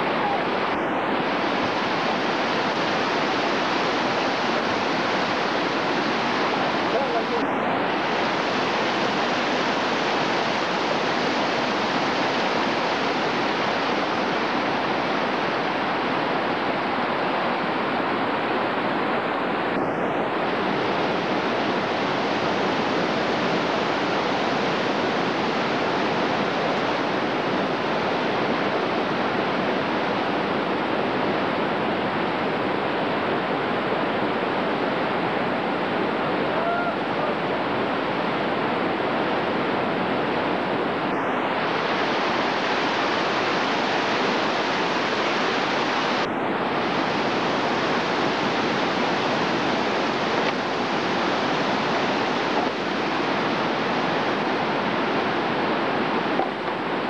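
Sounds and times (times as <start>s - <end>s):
whitewater rapids rushing: 0.0s - 57.0s.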